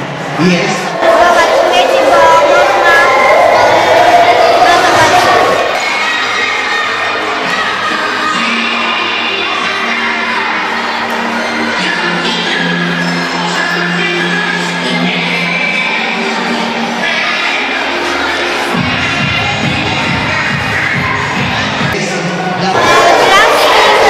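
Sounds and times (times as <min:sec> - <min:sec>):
background music: 0:00.0 - 0:24.0
children shouting and cheering: 0:00.0 - 0:24.0.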